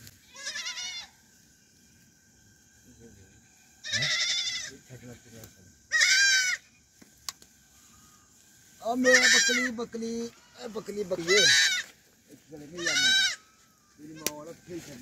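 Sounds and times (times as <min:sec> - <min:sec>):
goat bleating: 0:00.2 - 0:01.2, 0:03.8 - 0:04.8, 0:05.9 - 0:06.7, 0:09.0 - 0:12.0, 0:12.7 - 0:14.3.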